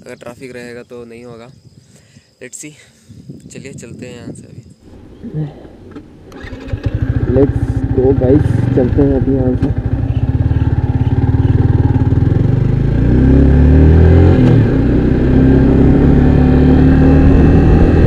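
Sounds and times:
motorcycle engine revving: 5.0s - 18.0s
motorcycle gear change: 5.9s - 7.2s.

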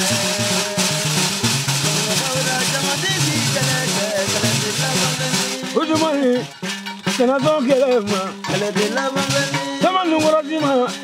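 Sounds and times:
steady percussion: 0.0s - 11.0s.

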